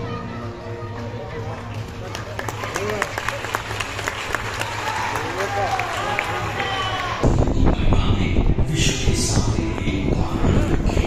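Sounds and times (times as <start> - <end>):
crowd chattering: 0.0 - 11.0
hand claps: 1.6 - 7.1.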